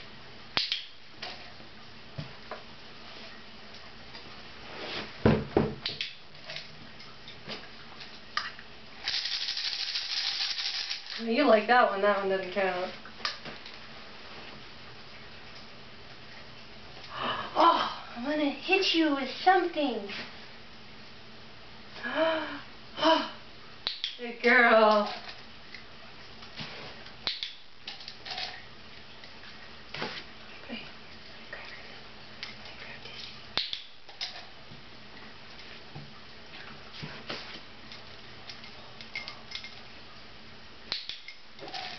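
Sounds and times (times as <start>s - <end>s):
low room hiss: 0.0s - 41.9s.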